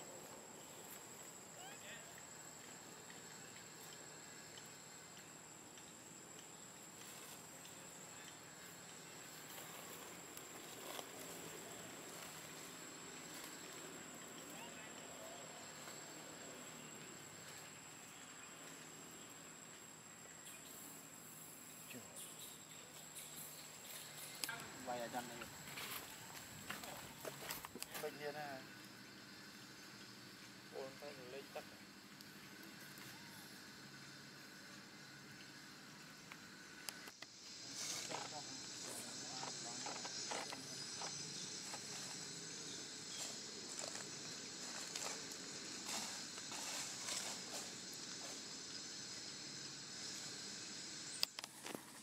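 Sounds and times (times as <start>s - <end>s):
high-pitched insect drone: 0.0s - 52.0s
soft hiss: 0.0s - 52.0s.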